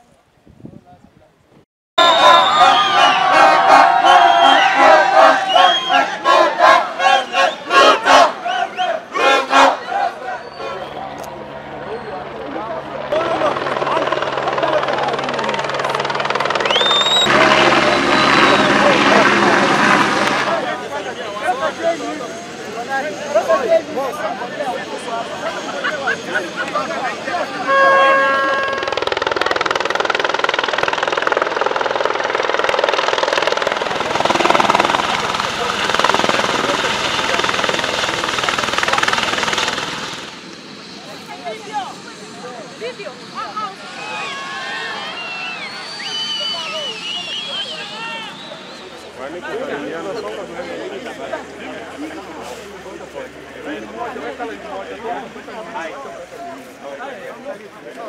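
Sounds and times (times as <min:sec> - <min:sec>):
shrill whistle: 0:02.0 - 0:06.2, 0:16.6 - 0:18.8, 0:43.9 - 0:49.3
crowd shouting: 0:02.0 - 0:12.1, 0:13.0 - 0:29.0, 0:41.1 - 0:50.8
engine whine: 0:02.0 - 0:55.5
helicopter flying overhead: 0:02.0 - 0:57.9.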